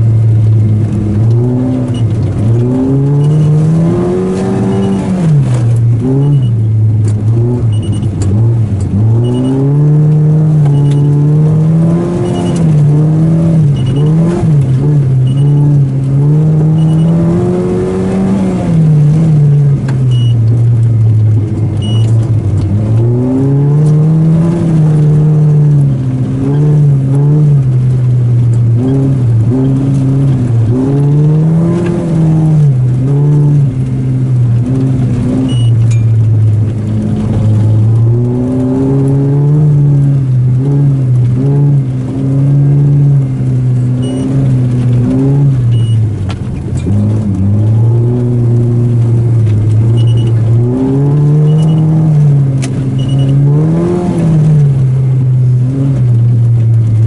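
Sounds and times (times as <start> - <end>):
car engine revving: 0.0 - 57.0.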